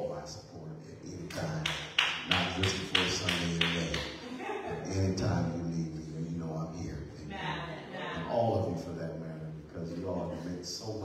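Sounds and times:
person talking: 0:00.0 - 0:11.0
hand claps in steady rhythm: 0:01.3 - 0:04.2.

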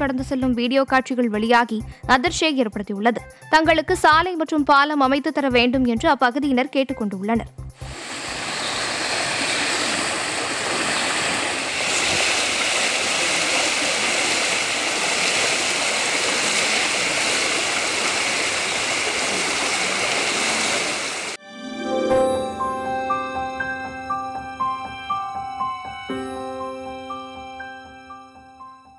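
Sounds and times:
fast-flowing river rushing: 0:07.9 - 0:21.4.

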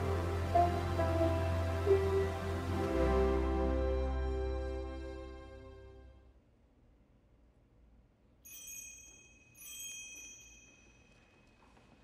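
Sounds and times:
metal chime bells ringing: 0:08.5 - 0:11.4.

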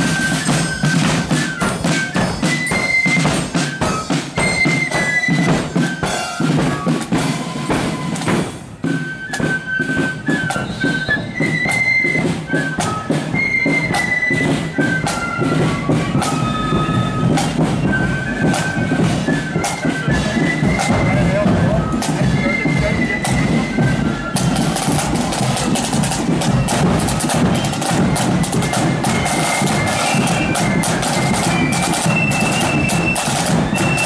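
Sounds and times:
flutes playing melody: 0:00.0 - 0:34.0
snare and bass drums: 0:00.0 - 0:34.0.

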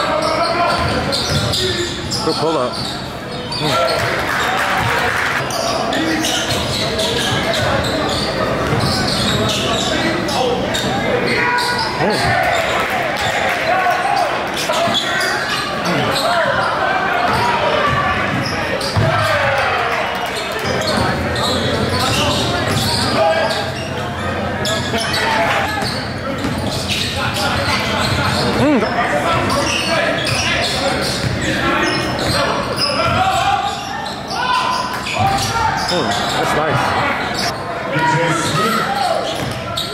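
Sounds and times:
indistinct echoing voices: 0:00.0 - 0:39.9.

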